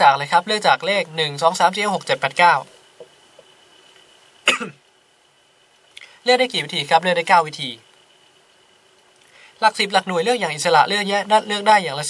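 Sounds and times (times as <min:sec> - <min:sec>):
faint high-pitched whine: 0:00.0 - 0:12.0
man coughing: 0:04.5 - 0:04.8.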